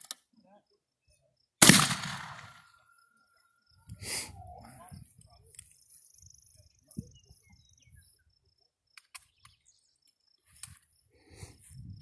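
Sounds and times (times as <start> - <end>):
wind rumble on microphone: 11.3 - 12.0.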